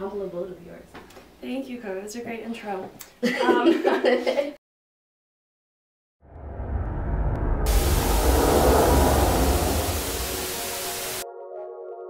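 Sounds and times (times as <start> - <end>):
deep rumble: 6.2 - 11.2
loud static-like hiss: 7.7 - 11.2.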